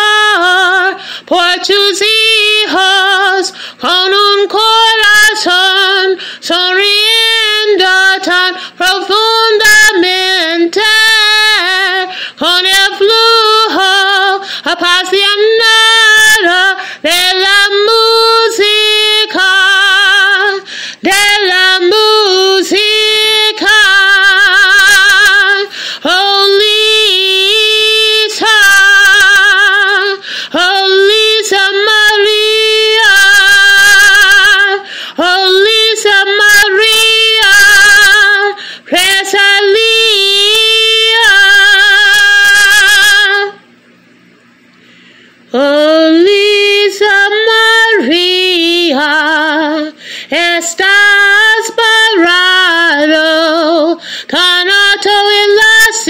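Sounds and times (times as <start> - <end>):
woman singing unaccompanied: 0.0 - 43.7, 45.5 - 56.0.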